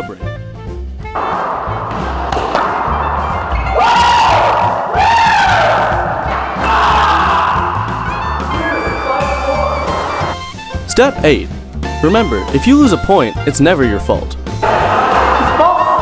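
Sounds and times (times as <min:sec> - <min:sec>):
background music: 0:00.0 - 0:16.0
man yelling in celebration: 0:07.2 - 0:10.2.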